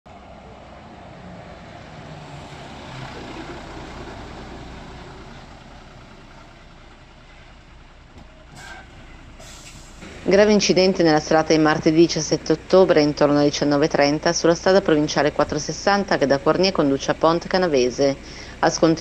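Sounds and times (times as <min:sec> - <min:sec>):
large vehicle rumbling: 0:00.1 - 0:19.0.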